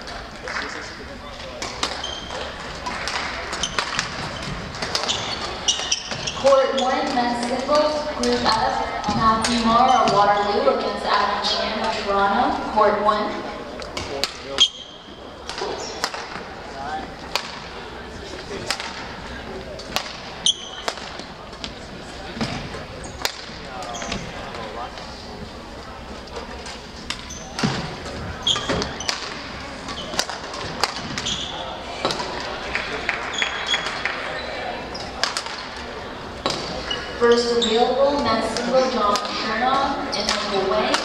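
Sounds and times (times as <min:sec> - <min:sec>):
murmur of voices: 0:00.0 - 0:41.0
rackets striking shuttlecocks: 0:01.6 - 0:06.3, 0:17.3 - 0:17.7
shoe squeaks on hardwood floor: 0:01.9 - 0:02.6, 0:03.5 - 0:07.3, 0:09.2 - 0:10.8, 0:14.6 - 0:16.0, 0:20.4 - 0:20.9, 0:23.9 - 0:24.3, 0:27.2 - 0:27.8, 0:28.4 - 0:30.3, 0:31.1 - 0:31.8, 0:33.3 - 0:35.2, 0:36.6 - 0:38.2.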